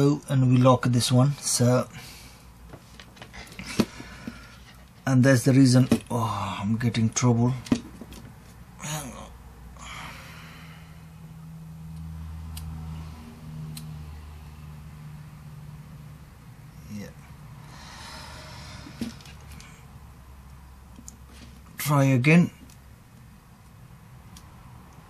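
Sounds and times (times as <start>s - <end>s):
person breathing out: 9.8s - 11.2s, 17.6s - 19.8s.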